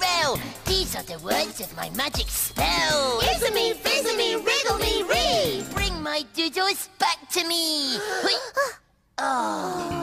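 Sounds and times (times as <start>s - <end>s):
person wailing ooh: 8.2s - 10.0s.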